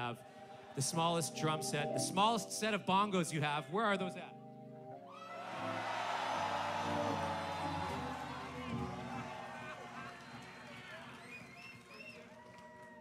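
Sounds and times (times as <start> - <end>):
crowd cheering and whooping: 5.1 - 13.0.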